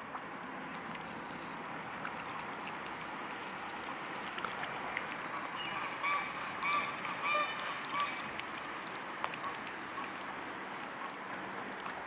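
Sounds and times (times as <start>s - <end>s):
swans honking: 5.3s - 8.3s.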